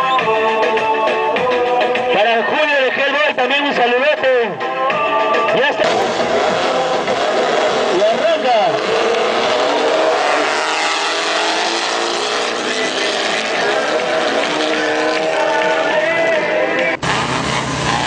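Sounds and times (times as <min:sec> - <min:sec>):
steady din of noise: 0:01.3 - 0:18.0
race car engines revving: 0:05.4 - 0:18.0.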